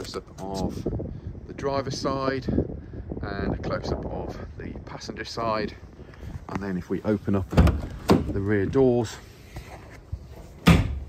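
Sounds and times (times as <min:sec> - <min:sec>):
van door clunk: 0:07.5 - 0:08.4, 0:10.6 - 0:11.0.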